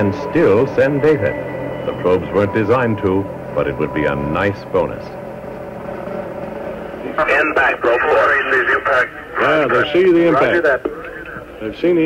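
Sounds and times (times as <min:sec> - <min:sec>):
faint held tone: 0:00.0 - 0:08.2
steady hum: 0:00.0 - 0:12.0.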